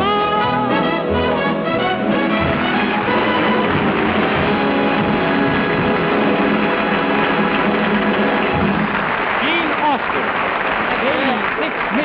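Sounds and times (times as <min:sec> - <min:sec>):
band playing loud music: 0:00.0 - 0:09.4.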